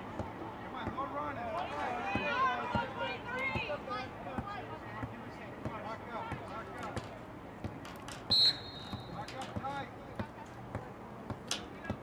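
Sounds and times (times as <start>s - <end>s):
referee's whistle blast: 8.3s - 9.3s.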